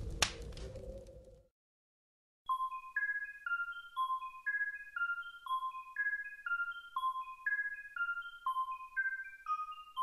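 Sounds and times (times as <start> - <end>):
tinkling chime melody: 2.5 - 10.0.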